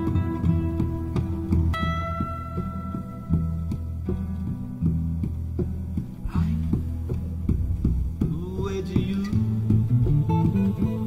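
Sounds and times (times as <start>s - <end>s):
low bass tone: 0.0s - 11.0s
plucked acoustic guitar: 0.0s - 11.0s.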